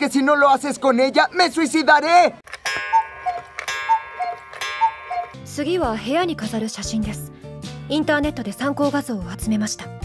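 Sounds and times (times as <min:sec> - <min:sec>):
clock ticking: 0:02.5 - 0:06.0
steady held tone: 0:02.6 - 0:05.8.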